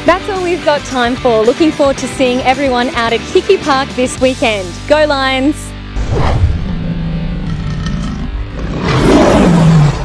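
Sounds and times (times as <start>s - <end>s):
background music: 0.0s - 10.0s
lion roar: 6.1s - 10.0s.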